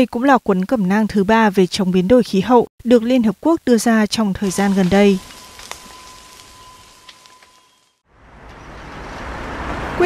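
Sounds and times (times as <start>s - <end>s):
street traffic: 4.5s - 10.0s.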